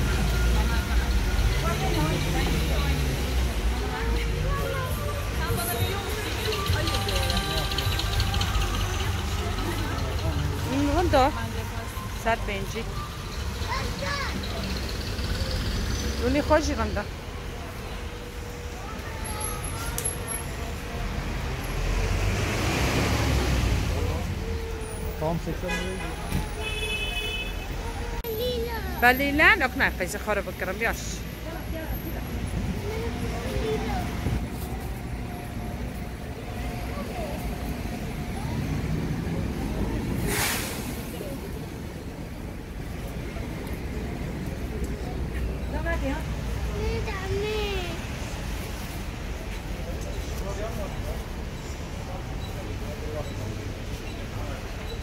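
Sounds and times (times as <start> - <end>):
passing vehicles rumble: 0.0 - 55.0
short burst of hiss: 40.2 - 41.1.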